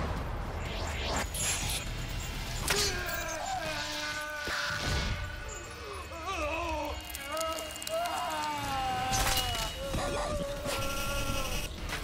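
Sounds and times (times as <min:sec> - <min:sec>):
man screaming in agony: 0:02.7 - 0:11.7.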